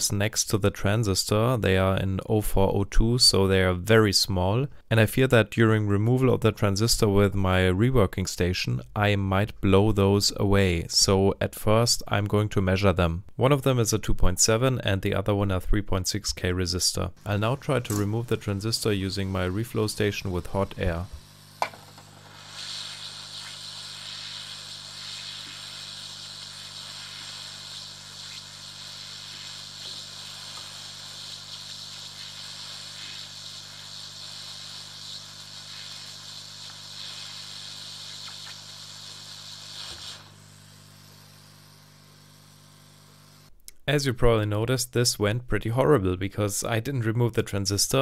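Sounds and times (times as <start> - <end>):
hot air station hissing: 17.2 - 42.0.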